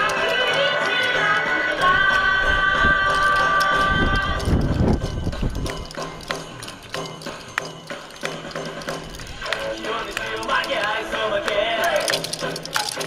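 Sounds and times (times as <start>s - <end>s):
wooden hand clappers clacking: 0.0s - 13.0s.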